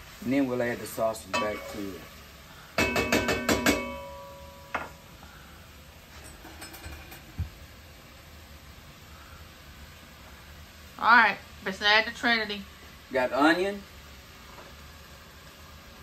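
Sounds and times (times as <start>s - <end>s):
faint steady hiss: 0.0s - 16.0s
spoon tapping metal pot: 2.8s - 4.9s.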